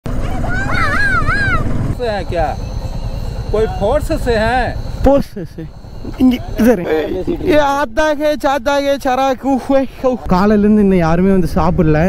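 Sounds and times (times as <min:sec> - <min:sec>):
motorcycle engine rumble: 0:00.1 - 0:12.0.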